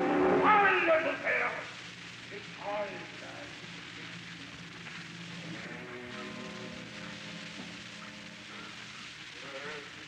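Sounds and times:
orchestra: 0.0 - 1.5
recording hiss: 0.0 - 10.0.

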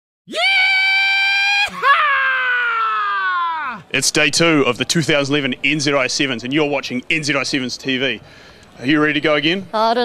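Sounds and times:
person screaming: 0.3 - 3.9.

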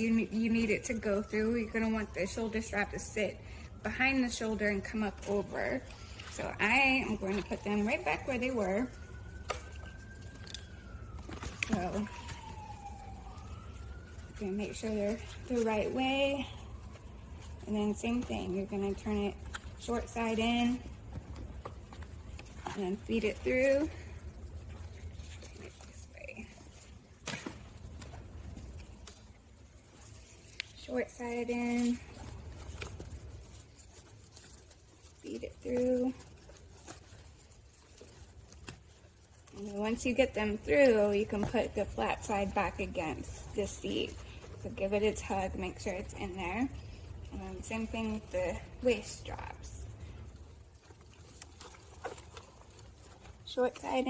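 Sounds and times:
fabric and strap rustle: 0.0 - 54.0
low steady hum: 0.0 - 54.0.

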